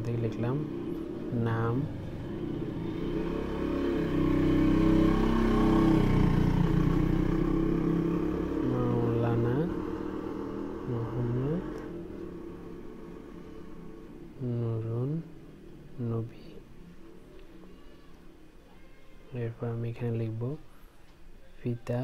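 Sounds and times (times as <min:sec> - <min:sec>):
vehicle engine passing by: 0:00.0 - 0:18.5.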